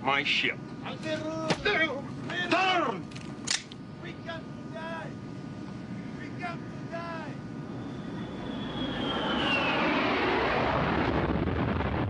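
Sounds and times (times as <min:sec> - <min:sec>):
low cabin drone: 0:00.0 - 0:11.6
man shouting: 0:06.2 - 0:07.4.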